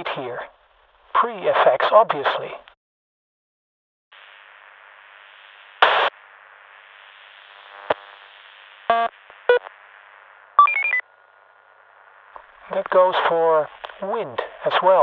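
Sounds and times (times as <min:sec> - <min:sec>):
radio static hiss: 0:01.2 - 0:02.7, 0:04.2 - 0:15.0
radio squelch burst: 0:05.7 - 0:06.2.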